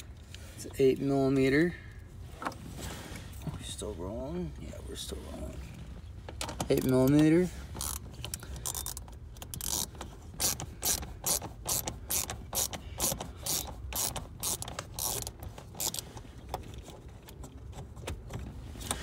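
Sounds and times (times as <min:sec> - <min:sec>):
socket ratchet clicking: 0:07.8 - 0:16.0.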